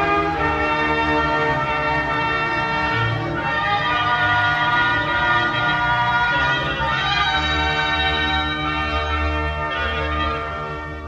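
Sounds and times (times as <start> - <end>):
wind band playing held chords: 0.0 - 11.0.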